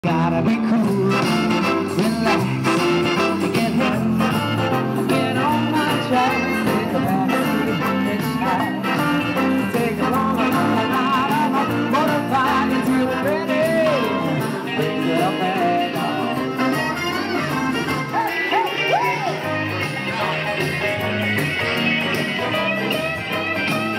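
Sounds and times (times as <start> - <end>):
man singing into microphone: 0.0 - 17.0
live band with electric guitar: 0.0 - 23.9.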